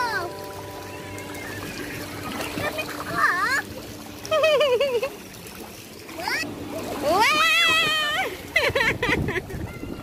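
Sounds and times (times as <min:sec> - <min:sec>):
water splashing: 0:00.0 - 0:10.0
child's high-pitched cry: 0:09.5 - 0:10.0.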